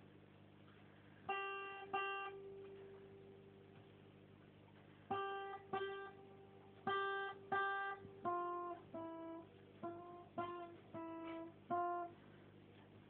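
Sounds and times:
acoustic guitar plucked notes: 1.3 - 3.9, 5.1 - 12.3.

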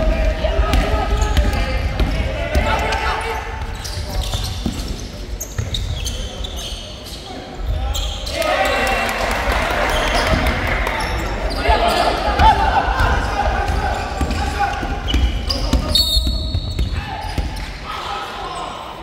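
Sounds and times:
basketball bouncing on wooden court: 0.2 - 2.9, 12.4 - 17.7
people shouting: 11.5 - 16.0.

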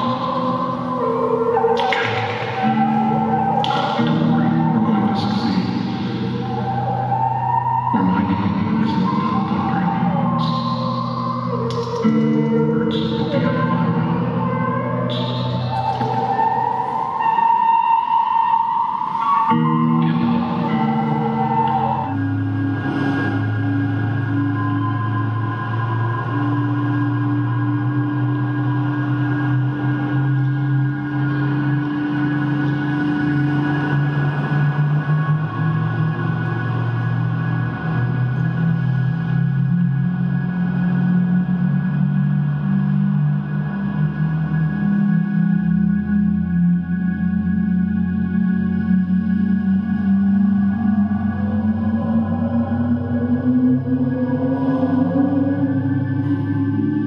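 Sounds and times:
electric guitar ambient drone: 0.0 - 57.0
electric guitar rising tone: 19.0 - 39.4.

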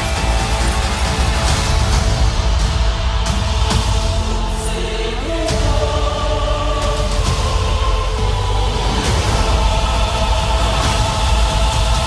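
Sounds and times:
dark dramatic trailer score: 0.0 - 12.0.

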